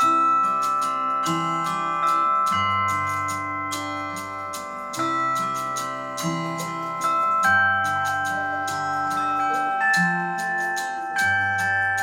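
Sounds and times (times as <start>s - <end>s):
acoustic instrumental music: 0.0s - 12.0s.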